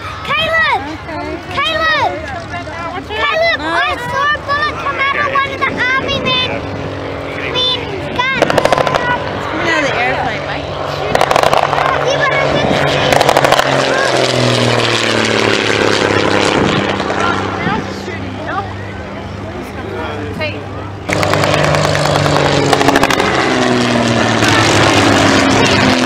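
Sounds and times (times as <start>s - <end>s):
propeller plane flying past: 0.0s - 26.0s.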